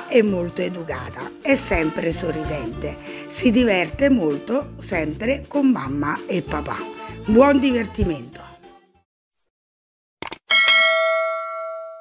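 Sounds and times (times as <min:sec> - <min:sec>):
quick clicks: 0:10.2 - 0:10.4
bright bell ding: 0:10.5 - 0:12.0.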